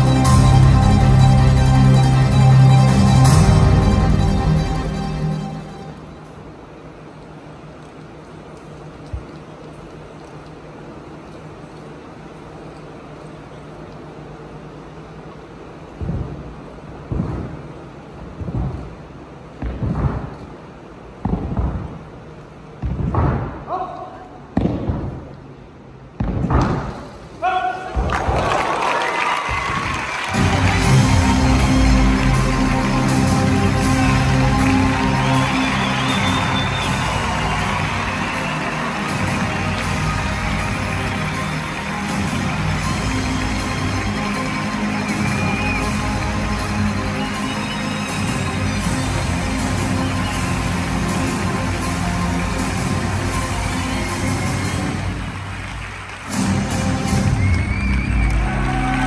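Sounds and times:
loud music with heavy beat: 0.0s - 5.5s, 30.3s - 55.4s.

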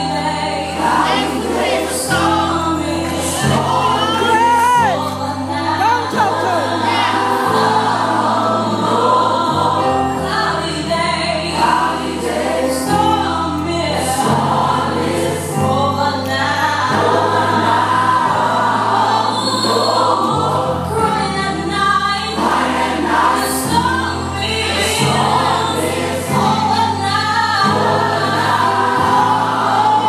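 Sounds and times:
choir singing: 0.0s - 30.0s.

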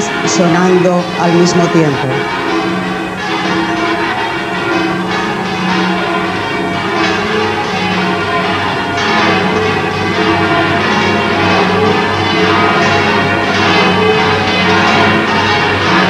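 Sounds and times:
church bells pealing: 0.0s - 16.0s.

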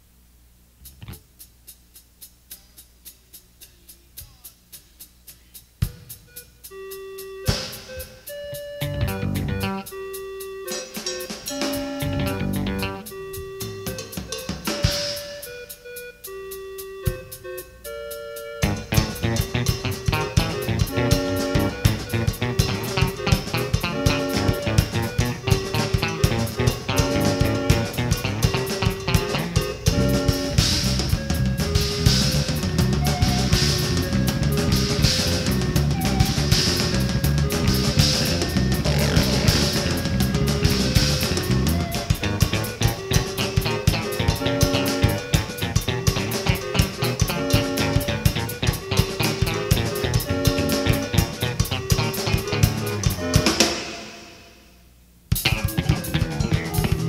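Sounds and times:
drums ticking steady pulse: 0.0s - 57.0s
keyboard and bass notes: 0.8s - 1.8s, 5.8s - 54.6s, 55.3s - 57.0s
live band playing: 5.8s - 54.5s, 55.3s - 57.0s.

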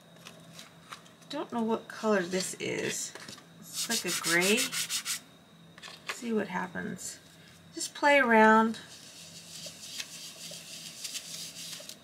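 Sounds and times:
sponge rubbing chalk on paper: 3.7s - 5.2s, 8.9s - 12.0s.

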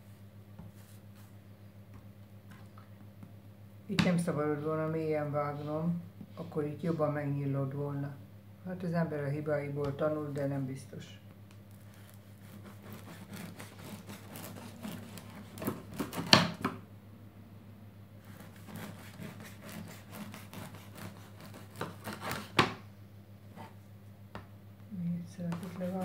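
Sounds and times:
bread knife sawing through bread: 11.8s - 16.6s, 18.2s - 22.7s, 25.4s - 26.0s.

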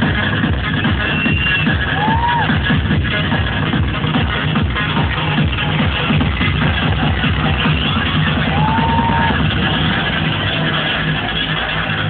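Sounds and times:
muffled electronic dance music: 0.0s - 12.0s.

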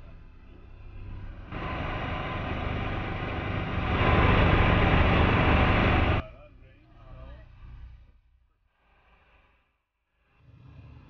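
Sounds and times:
motorboat engine: 1.0s - 6.2s.

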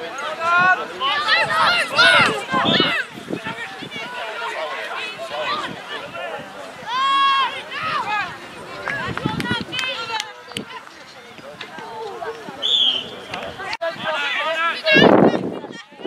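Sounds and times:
players and onlookers shouting: 0.0s - 10.4s
long high shout: 0.6s - 3.6s, 6.8s - 8.2s.

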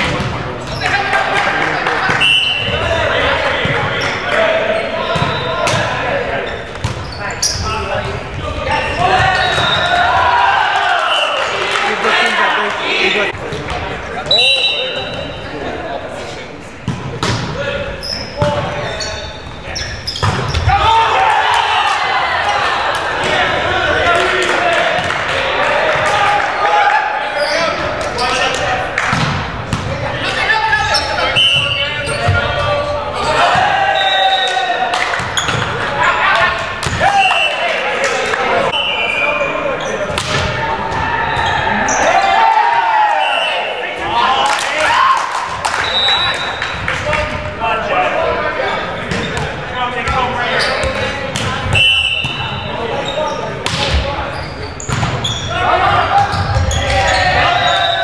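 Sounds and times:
sneakers squeaking on floor: 0.0s - 1.0s, 2.0s - 10.1s, 13.5s - 15.5s, 16.8s - 20.8s, 27.4s - 37.6s, 38.7s - 40.5s, 48.7s - 58.0s
players' voices and calls: 0.0s - 58.0s.

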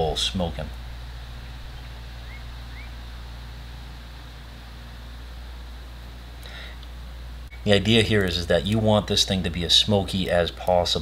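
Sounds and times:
steady low hum: 0.0s - 11.0s
faint rising chirps: 0.9s - 5.5s.

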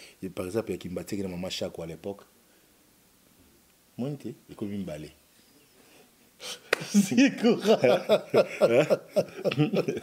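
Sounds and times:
man speaking: 4.0s - 5.2s, 6.9s - 9.6s
man laughing: 6.8s - 10.0s.

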